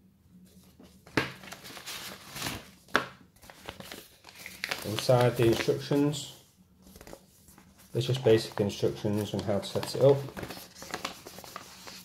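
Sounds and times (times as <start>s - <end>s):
paper rustling and crinkling: 0.6s - 12.0s.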